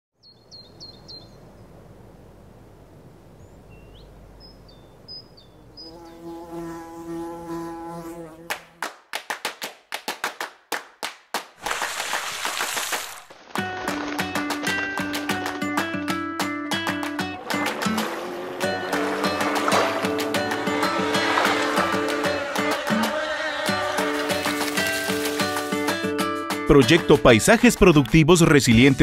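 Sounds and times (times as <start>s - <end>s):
low steady hum: 1.2s - 5.8s
buzzing drone: 5.8s - 8.5s, 17.3s - 25.8s
music: 13.5s - 29.0s.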